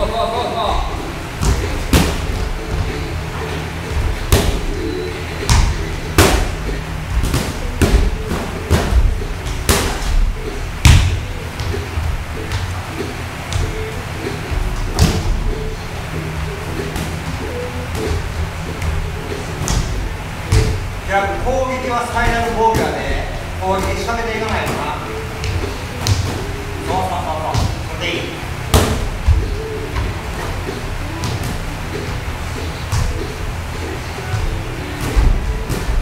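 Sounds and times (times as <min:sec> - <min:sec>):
music playing: 0:00.0 - 0:36.0
boxing gloves thudding: 0:01.4 - 0:03.0, 0:05.4 - 0:11.7.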